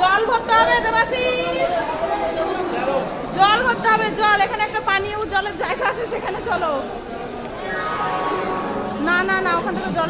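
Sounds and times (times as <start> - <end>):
people chattering: 0.0 - 10.0
woman talking close to microphone: 9.0 - 10.0.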